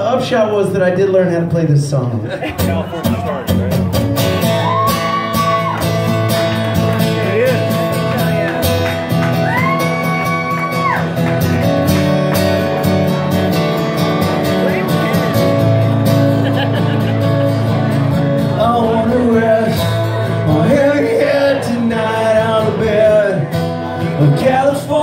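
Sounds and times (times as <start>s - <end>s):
acoustic guitars strumming: 0.0s - 25.0s.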